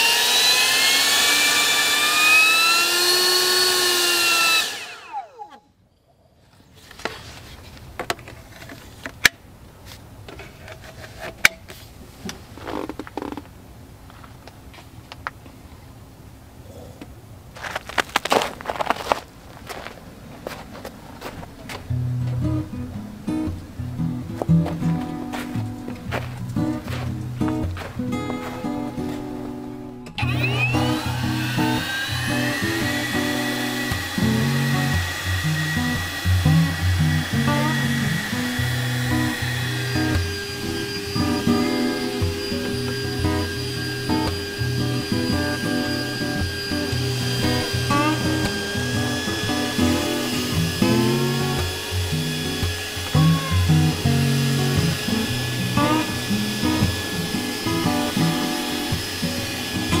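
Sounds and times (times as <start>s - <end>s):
leaf blower whining: 0.0s - 5.6s, 24.3s - 60.0s.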